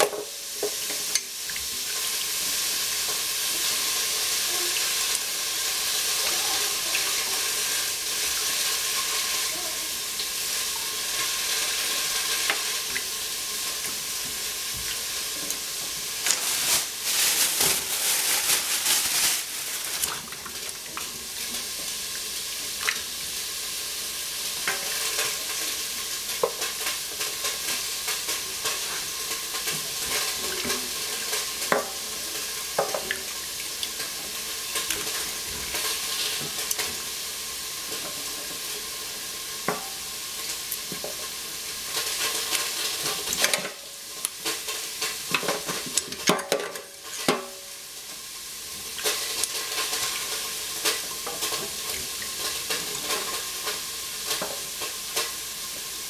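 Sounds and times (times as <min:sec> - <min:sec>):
steady hiss: 0:00.0 - 0:56.0.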